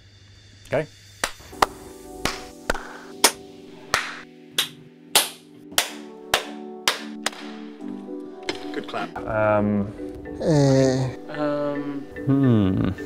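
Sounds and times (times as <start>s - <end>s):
hand claps: 1.2s - 8.6s
music with sustained notes: 1.3s - 13.0s.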